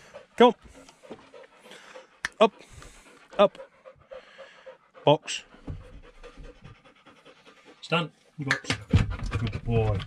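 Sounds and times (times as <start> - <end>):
dog panting: 0.0 - 10.0.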